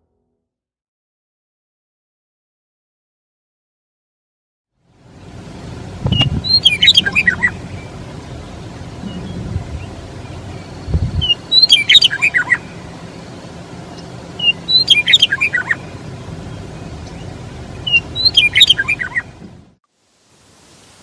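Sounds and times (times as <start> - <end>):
steady low rumble: 5.0 - 19.8
meadowlark singing: 5.2 - 19.5.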